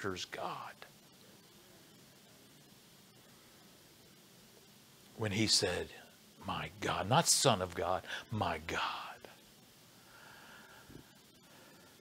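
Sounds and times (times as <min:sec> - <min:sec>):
man speaking: 0:00.0 - 0:00.8, 0:05.2 - 0:09.4.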